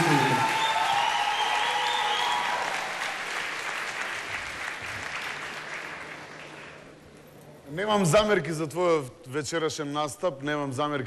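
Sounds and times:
audience applauding: 0:00.0 - 0:06.9.

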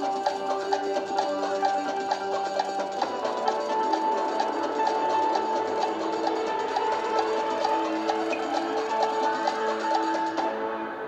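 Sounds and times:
game show countdown music: 0:00.0 - 0:11.0
ticking pulse: 0:00.0 - 0:11.0.

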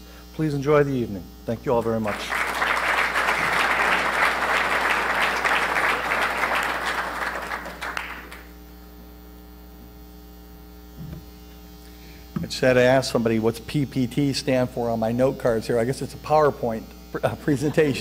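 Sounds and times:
steady electrical hum: 0:00.0 - 0:18.0
audience applauding: 0:02.1 - 0:08.5.

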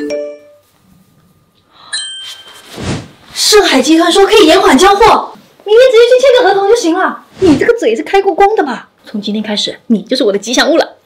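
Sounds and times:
phone notification chime: 0:01.9 - 0:02.7.

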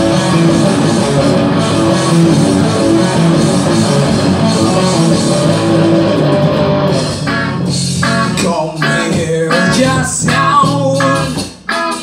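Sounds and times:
electric guitar chords: 0:00.0 - 0:12.0
instrumental rock band: 0:00.0 - 0:12.0.

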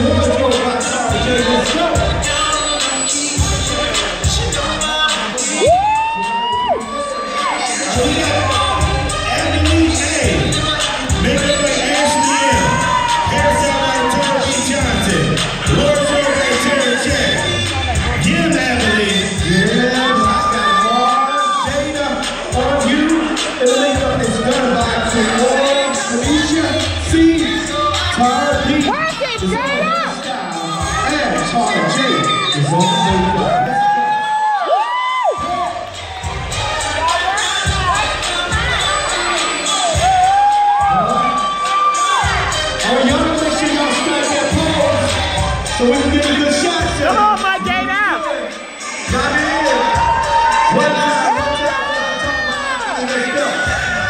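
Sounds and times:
audience cheering and shouting: 0:00.0 - 0:54.0
show music: 0:00.0 - 0:54.0.

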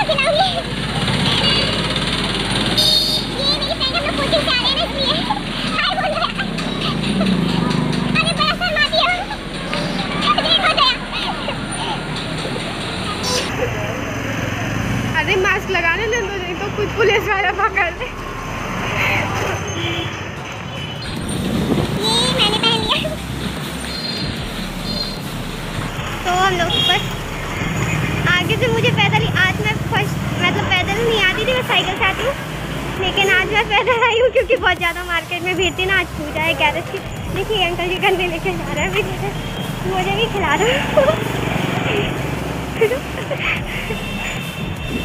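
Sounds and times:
high-pitched voices calling out: 0:00.0 - 0:13.7, 0:21.0 - 0:23.3, 0:26.0 - 0:45.0
street traffic: 0:00.0 - 0:45.0
girl laughing: 0:04.6 - 0:07.6, 0:40.4 - 0:44.3.

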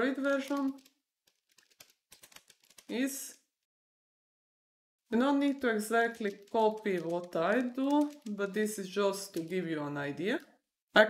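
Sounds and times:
computer keyboard typing: 0:00.2 - 0:02.9, 0:05.5 - 0:10.5.

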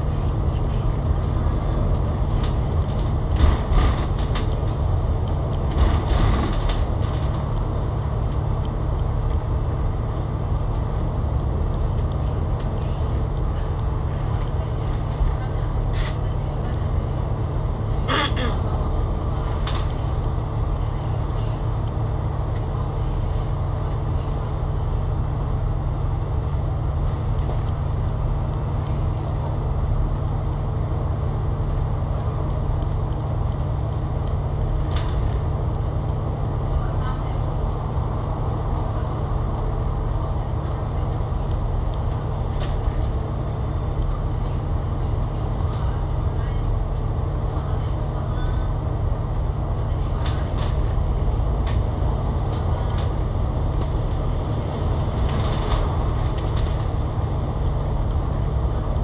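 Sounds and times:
bus body rattling: 0:00.0 - 0:08.0, 0:09.8 - 0:24.6, 0:31.6 - 0:59.0
bus diesel engine drone: 0:00.0 - 0:59.0
tyre and road rumble: 0:00.0 - 0:59.0.

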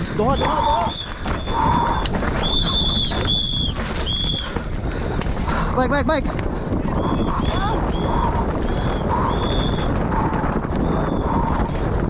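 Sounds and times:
bike rattling: 0:00.0 - 0:12.0
tyres rumbling on dirt: 0:00.0 - 0:12.0
bike disc brakes squealing: 0:00.2 - 0:04.6.

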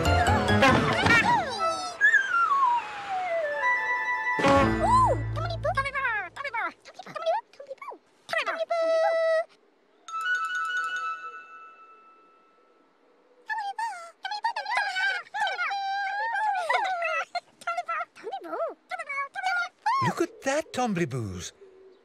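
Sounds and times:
high-pitched cartoon voices babbling: 0:13.5 - 0:20.5.

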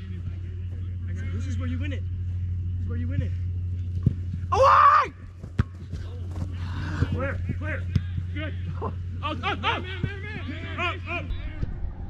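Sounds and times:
steady low hum: 0:00.0 - 0:12.0
loud yell: 0:04.5 - 0:05.2
people shouting outdoors: 0:04.5 - 0:05.2.

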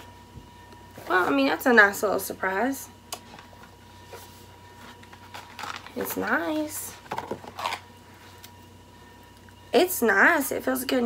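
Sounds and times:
faint steady hum: 0:00.0 - 0:11.0
packaging clicks and rustles: 0:04.8 - 0:07.9.

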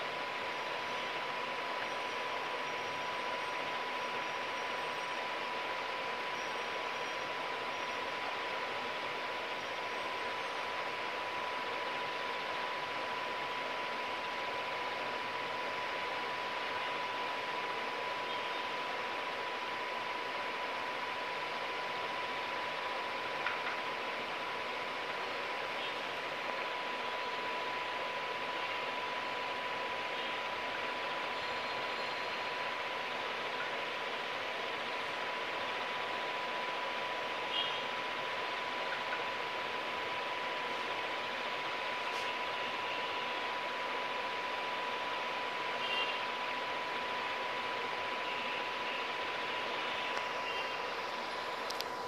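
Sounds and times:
fan whirring with high whine: 0:00.0 - 0:52.0
small click: 0:51.6 - 0:51.9.

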